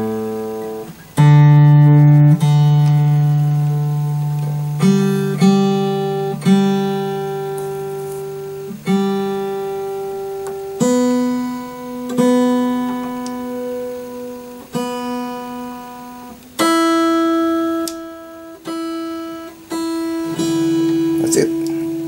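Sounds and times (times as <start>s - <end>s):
acoustic guitar strings plucked: 0.0s - 22.0s.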